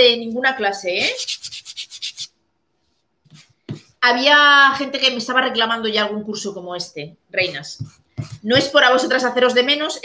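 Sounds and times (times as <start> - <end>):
sanding block on wood: 1.2 - 2.3.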